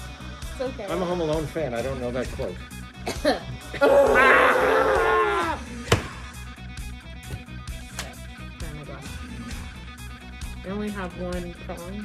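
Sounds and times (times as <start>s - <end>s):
quiet background music: 0.0s - 12.0s
person coughing: 3.0s - 3.5s.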